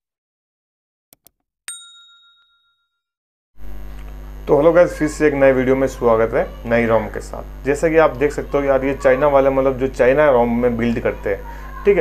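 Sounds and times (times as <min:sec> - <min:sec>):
bright bell ding: 0:01.7 - 0:03.0.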